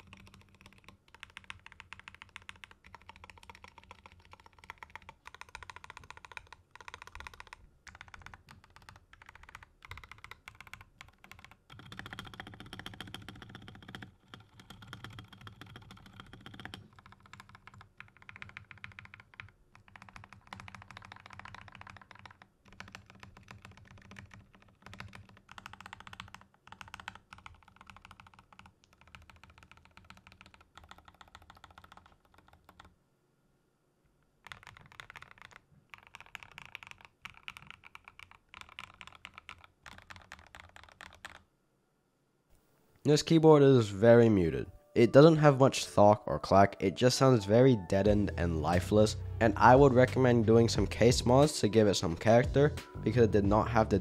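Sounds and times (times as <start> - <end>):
mechanical keyboard typing: 0.0 - 32.9, 34.4 - 41.4.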